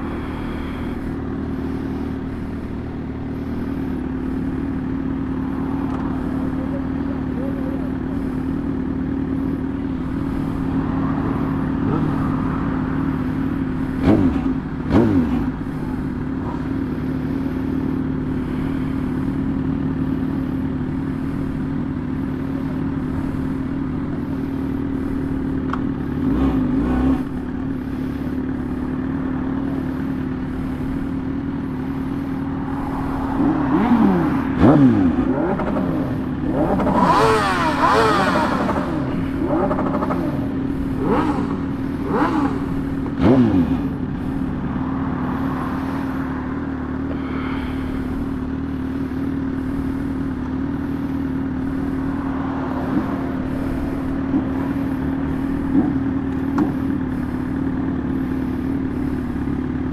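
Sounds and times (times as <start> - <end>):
motorcycle engine cruising: 0.0 - 59.9
vehicles passing by: 0.0 - 59.9.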